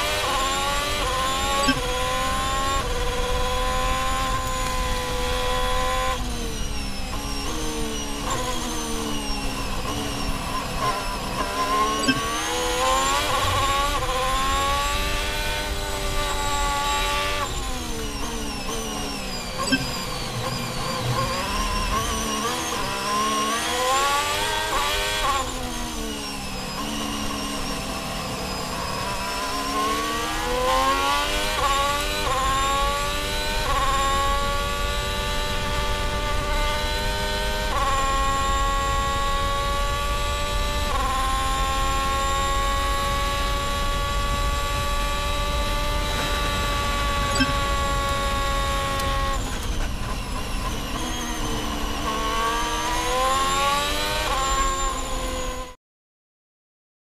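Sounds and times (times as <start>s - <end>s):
racing car engine revving: 0.0s - 55.8s.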